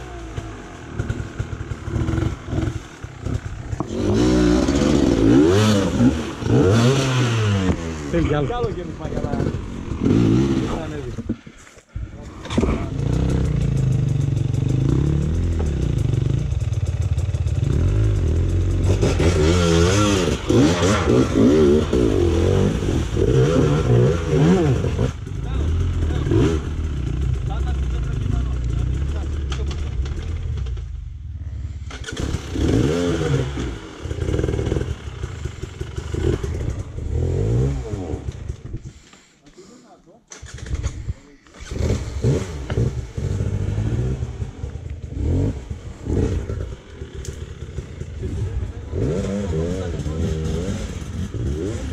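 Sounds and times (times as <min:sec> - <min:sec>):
dirt bike engine revving: 0:00.0 - 0:11.4, 0:12.2 - 0:38.9, 0:40.3 - 0:51.9.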